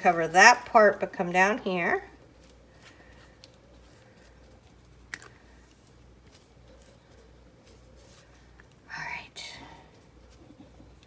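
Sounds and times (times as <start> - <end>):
paintbrush scratching on paper: 1.6 - 11.0
whispered murmur: 8.8 - 11.0.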